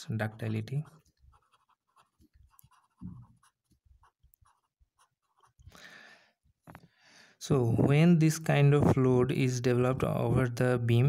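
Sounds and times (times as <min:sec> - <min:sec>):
pen scratching on paper: 0:00.3 - 0:05.7.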